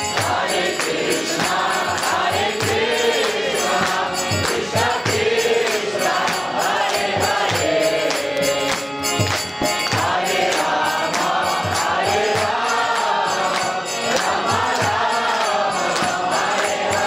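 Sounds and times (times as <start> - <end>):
congregation chanting: 0.0 - 17.0
percussion steady beat: 0.0 - 17.0.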